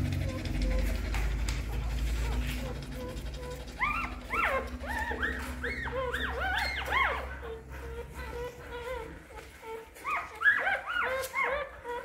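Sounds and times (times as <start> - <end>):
newborn puppies crying: 0.0 - 12.0.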